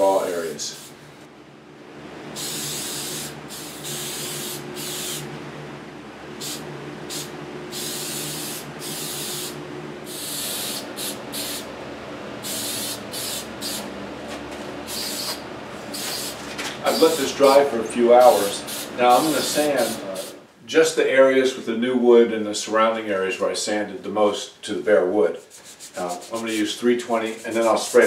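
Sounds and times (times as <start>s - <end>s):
aerosol spray can hissing: 2.4s - 5.2s, 6.4s - 11.7s, 12.4s - 13.9s, 14.9s - 17.3s, 18.7s - 20.4s.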